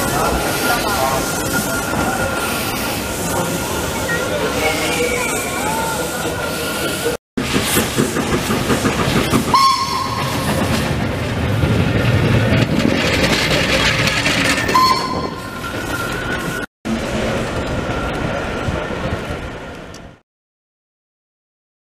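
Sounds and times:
wheels rumbling on rails: 0.0 - 20.2
steam whistle blasts: 9.5 - 10.3.

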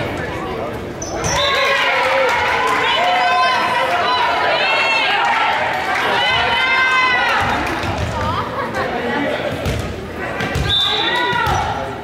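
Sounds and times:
players shouting and cheering: 1.1 - 12.0.

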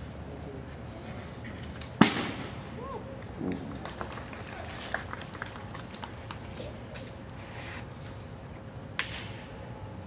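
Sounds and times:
rifle struck sharp crack: 2.0 - 2.6.

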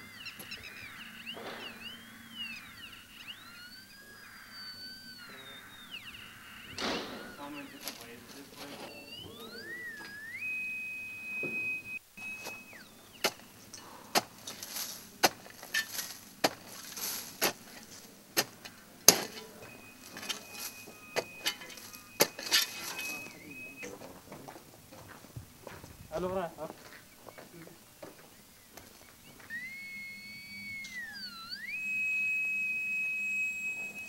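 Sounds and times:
high electronic tone rising: 0.0 - 18.1, 19.1 - 24.2, 28.6 - 34.0
shovel scraping: 14.1 - 23.4.

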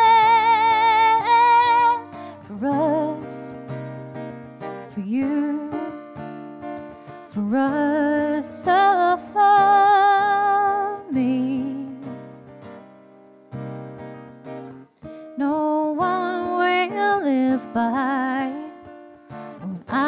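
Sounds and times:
woman singing with vibrato: 0.0 - 3.6, 4.9 - 6.0, 7.4 - 12.2, 15.4 - 18.9, 19.6 - 20.0
strummed acoustic guitar: 0.0 - 20.0.

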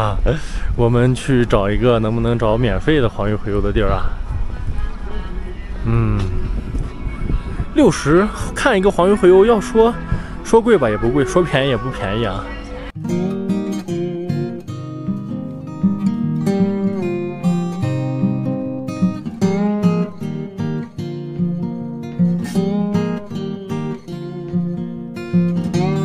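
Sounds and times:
strummed acoustic guitar: 12.4 - 26.0.

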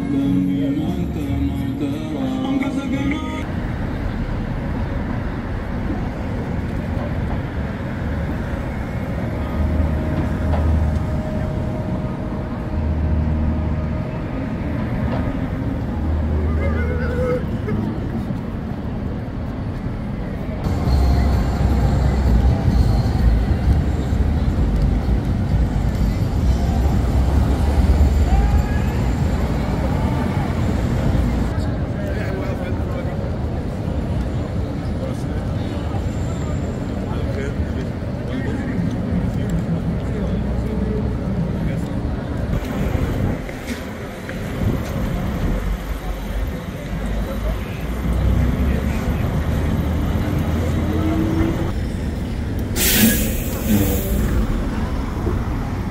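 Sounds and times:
music: 0.0 - 3.4
traffic rumble: 0.0 - 55.9
voices of passers-by: 0.0 - 55.9.

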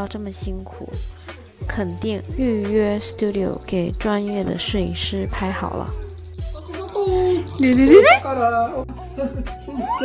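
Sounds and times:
background music with steady beat: 0.0 - 10.0
baby whimpering: 2.4 - 4.6.

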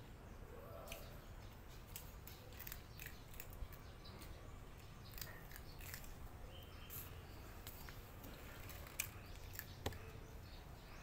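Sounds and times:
cat chewing crunchy food: 2.3 - 3.8, 5.0 - 6.2.

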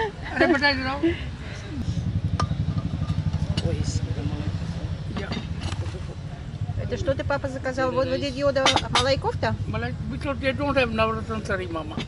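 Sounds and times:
low steady rumble: 0.0 - 11.7.

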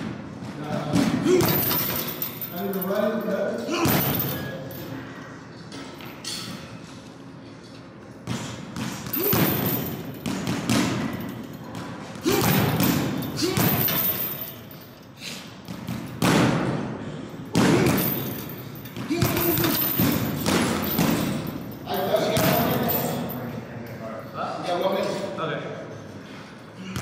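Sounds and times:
gloves thudding on punching bags: 8.3 - 14.2, 15.6 - 16.9, 17.5 - 21.6.

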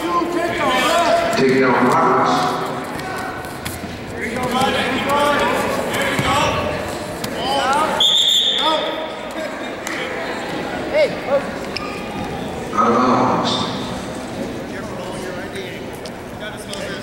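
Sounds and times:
echoing shouting voices: 0.0 - 14.1
referee's whistle blast: 8.0 - 8.9.

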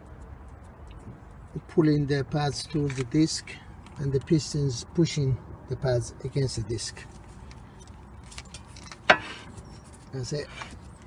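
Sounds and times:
faint rubbing and handling: 7.0 - 11.0.

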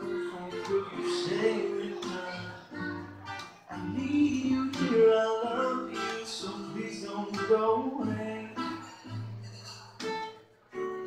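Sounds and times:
live guitar music: 0.0 - 11.0.

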